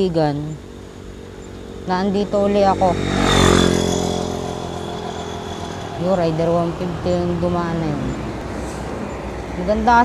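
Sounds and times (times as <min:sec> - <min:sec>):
high engine whine: 0:00.0 - 0:10.0
motorcycle passing by: 0:00.0 - 0:10.0.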